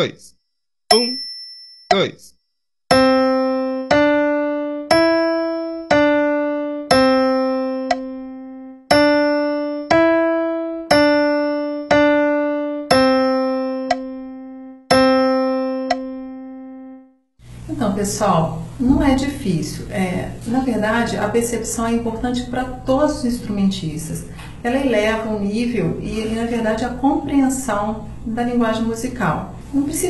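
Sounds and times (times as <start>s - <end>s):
slow piano melody: 2.9s - 17.2s.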